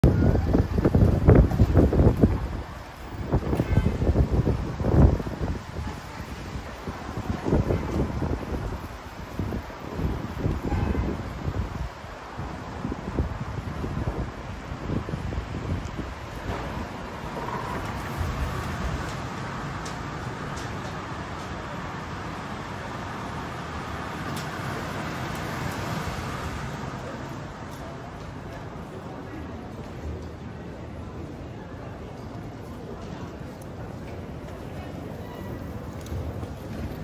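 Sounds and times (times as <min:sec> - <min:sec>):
wind buffeting microphone: 0:00.0 - 0:21.1
road traffic: 0:00.0 - 0:37.0.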